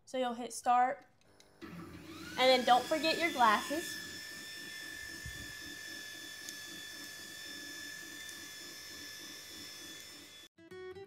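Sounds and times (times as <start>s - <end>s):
laser engraver whining: 1.6s - 10.5s
music: 10.6s - 11.0s.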